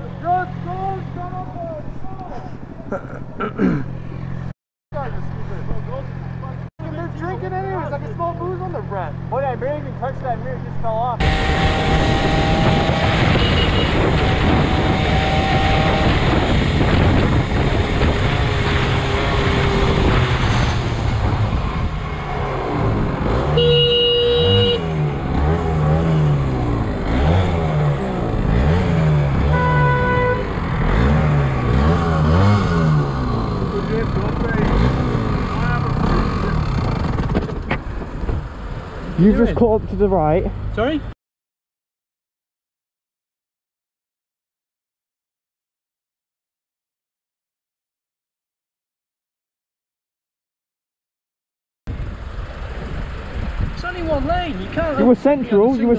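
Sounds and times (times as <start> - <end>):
motorcycle engine revving: 5.0 - 39.8
horn blast: 11.2 - 16.7, 23.3 - 25.1, 29.4 - 30.7
wind rushing over microphone: 11.2 - 23.5, 51.9 - 55.0.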